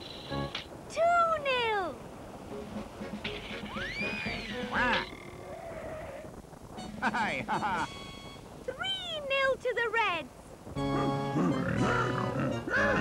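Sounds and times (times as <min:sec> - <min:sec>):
background music: 0:00.3 - 0:00.6, 0:02.5 - 0:05.1, 0:10.8 - 0:13.0
falling whistle glide: 0:03.7 - 0:04.8.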